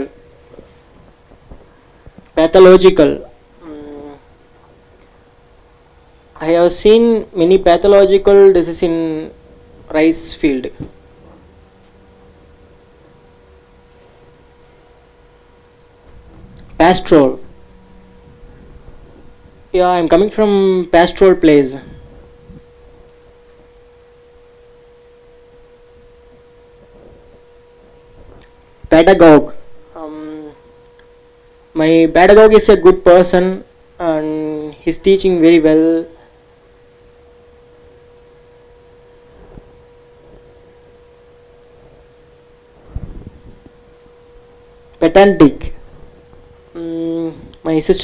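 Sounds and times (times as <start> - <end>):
faint high hum: 0.0 - 48.0
quiet room noise: 0.0 - 48.0
faint electronic tone: 2.5 - 4.5, 11.4 - 48.0.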